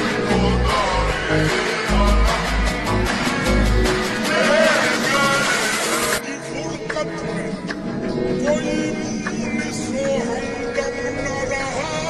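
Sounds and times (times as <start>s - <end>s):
man singing ornamented song: 0.0s - 3.0s, 4.1s - 7.7s, 8.3s - 12.0s.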